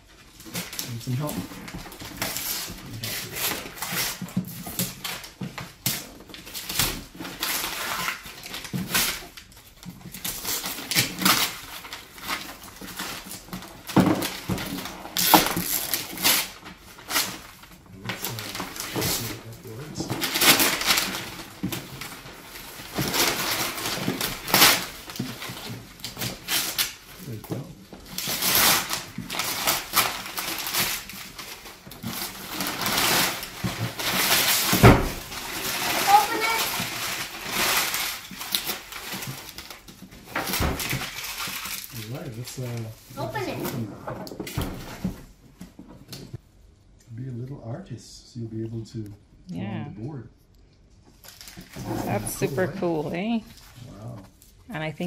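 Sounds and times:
wrapping paper tearing and crumpling: 0:00.2 - 0:45.1, 0:51.1 - 0:54.6.

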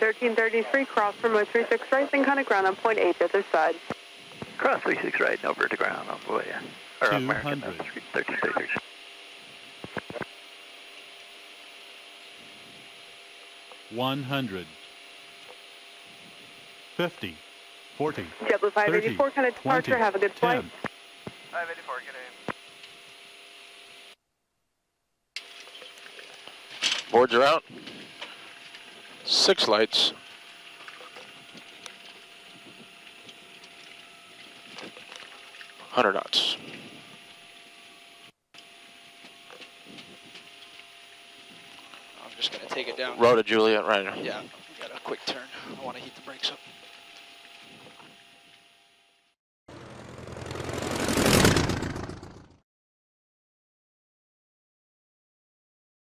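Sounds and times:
intercom hiss with faint hum: 0:00.0 - 0:23.0, 0:25.4 - 0:48.9
aircraft cockpit noise: 0:00.0 - 0:24.2, 0:25.4 - 0:49.0, 0:49.7 - 0:52.6.

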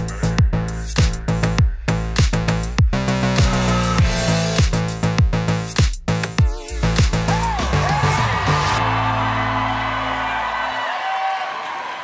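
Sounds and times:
crowd cheering: 0:07.2 - 0:12.0.

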